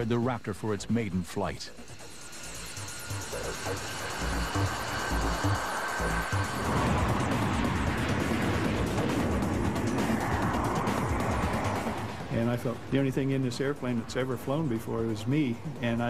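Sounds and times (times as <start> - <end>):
background music with low beat: 0.0 - 16.0
jet engines roaring: 1.4 - 16.0.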